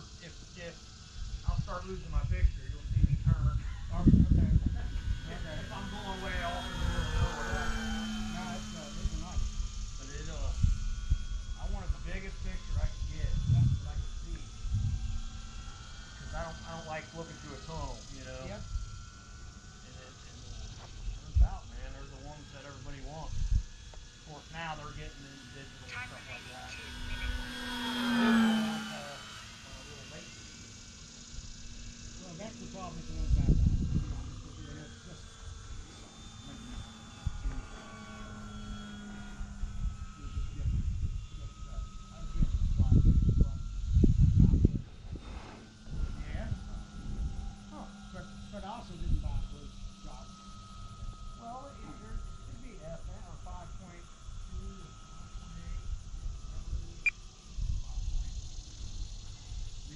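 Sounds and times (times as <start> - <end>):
low rumble bursts: 0.0 - 27.2
model airplane motor whining: 0.0 - 59.9.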